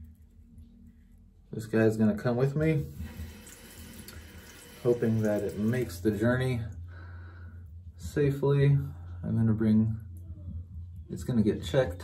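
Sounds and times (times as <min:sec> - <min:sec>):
sink tap running: 0:02.9 - 0:06.2.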